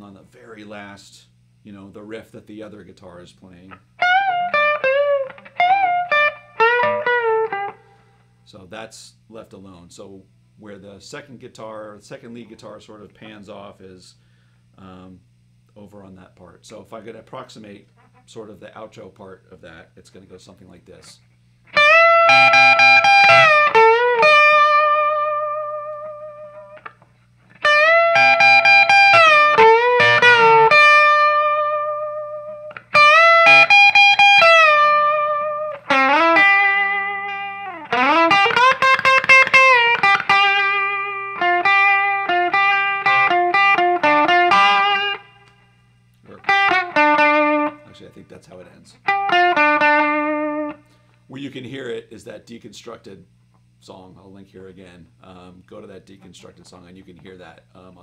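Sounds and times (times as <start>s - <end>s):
low amp hum: 0.0s - 58.0s
electric guitar rock riff: 4.0s - 8.1s, 21.7s - 45.7s, 46.3s - 48.0s, 49.0s - 51.1s.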